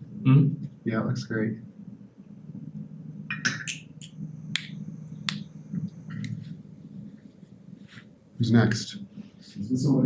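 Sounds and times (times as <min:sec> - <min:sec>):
faint high whine: 0:00.0 - 0:10.0
low room hum: 0:00.0 - 0:10.0.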